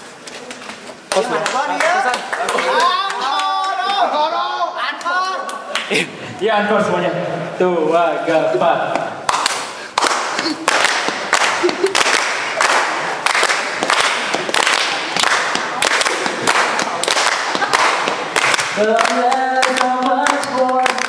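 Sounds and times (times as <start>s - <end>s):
crowd clapping in rhythm: 1.0s - 4.0s, 8.9s - 21.0s
singing: 18.8s - 21.0s.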